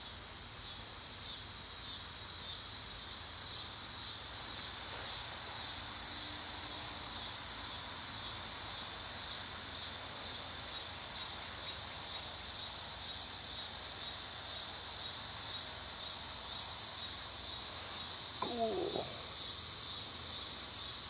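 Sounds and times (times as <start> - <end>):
insect chorus trilling: 0.0 - 21.0.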